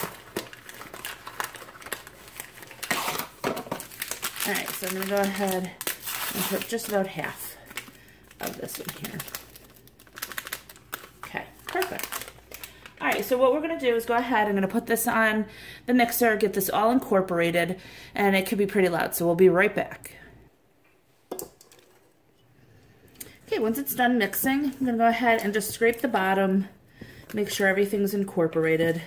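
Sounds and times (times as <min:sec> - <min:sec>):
paper packet crinkling: 0:00.0 - 0:13.4.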